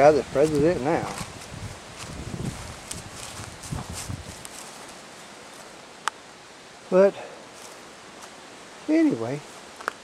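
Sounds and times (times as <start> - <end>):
footsteps on gravel and leaves: 0.0 - 5.8, 7.5 - 8.4.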